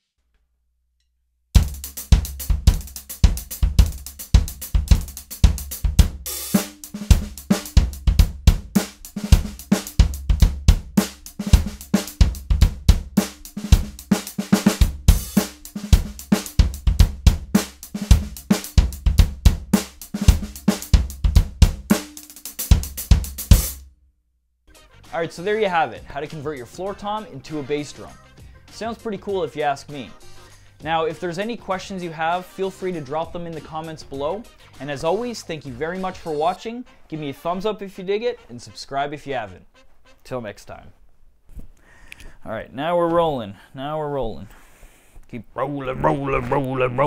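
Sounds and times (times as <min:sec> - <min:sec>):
bass drum kicks: 0:01.6 - 0:06.3, 0:07.0 - 0:13.2, 0:14.7 - 0:15.4, 0:16.0 - 0:19.7, 0:20.3 - 0:21.9
drum kit groove: 0:01.6 - 0:23.9, 0:30.8 - 0:36.6, 0:45.9 - 0:47.0.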